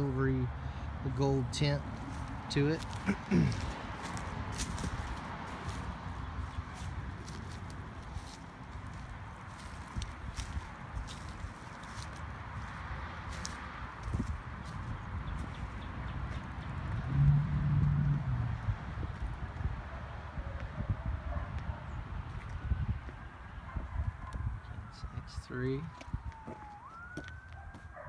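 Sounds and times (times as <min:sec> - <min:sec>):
footsteps on dry dirt: 0:01.9 - 0:17.0, 0:22.3 - 0:23.2, 0:25.8 - 0:28.0
low rumble: 0:16.8 - 0:20.0
low hum: 0:16.9 - 0:19.2.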